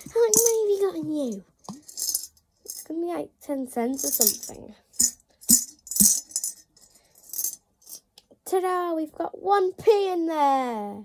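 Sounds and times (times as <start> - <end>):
coins rattling in piggy bank: 0.2 - 0.9, 1.6 - 2.9, 4.0 - 8.1.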